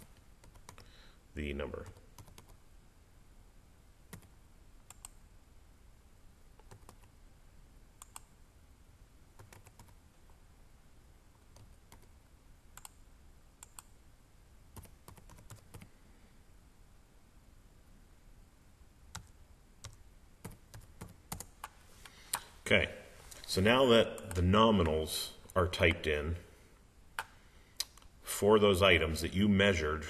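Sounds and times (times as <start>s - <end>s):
faint computer keyboard keystrokes: 0.0s - 0.9s, 1.8s - 2.6s, 4.1s - 5.2s, 6.6s - 7.1s, 8.0s - 8.3s, 9.4s - 10.0s, 12.8s - 13.0s, 13.6s - 13.9s, 19.1s - 22.5s.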